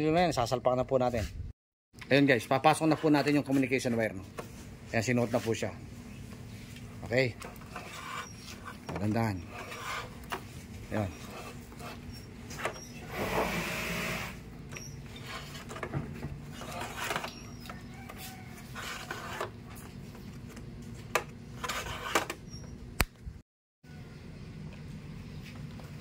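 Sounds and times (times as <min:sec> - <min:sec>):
wire rustling and scraping: 0:02.5 - 0:13.9, 0:14.8 - 0:22.4.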